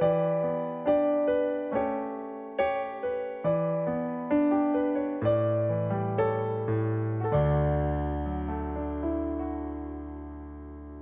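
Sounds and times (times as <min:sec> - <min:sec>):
gentle piano chords: 0:00.0 - 0:11.0.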